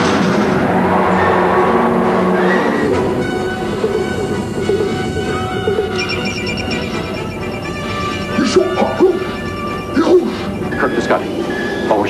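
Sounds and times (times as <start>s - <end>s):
film score music: 0.0s - 12.0s
high pinging tones: 3.8s - 12.0s.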